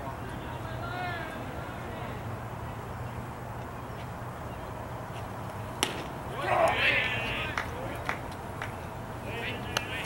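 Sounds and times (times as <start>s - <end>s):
baseball smacking into leather mitt: 5.8s - 6.8s.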